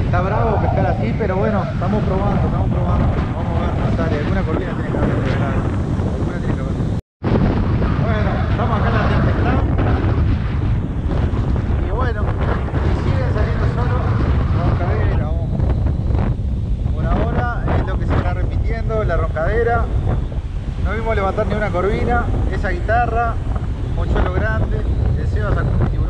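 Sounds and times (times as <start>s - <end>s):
voices: 0.0s - 6.8s, 8.0s - 10.4s, 11.1s - 15.9s, 16.9s - 20.2s, 20.8s - 26.0s
strong wind buffeting microphone: 0.0s - 26.0s.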